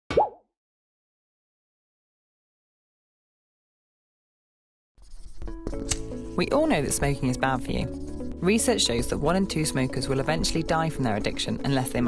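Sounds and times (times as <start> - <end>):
cartoon plop sound effect: 0.1 - 0.4.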